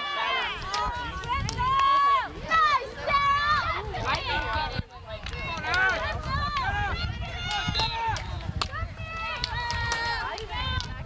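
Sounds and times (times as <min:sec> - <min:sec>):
people shouting and yelling: 0:00.0 - 0:11.0.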